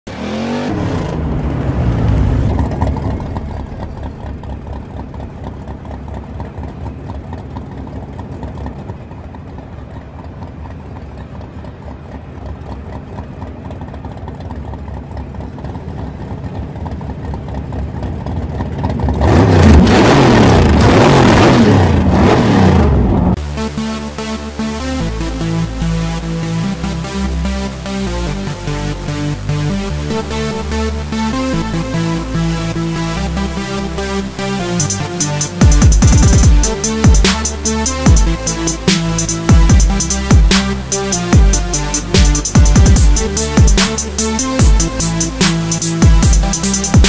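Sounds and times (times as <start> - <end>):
car engine revving: 0.0 - 47.0
music: 23.4 - 47.0.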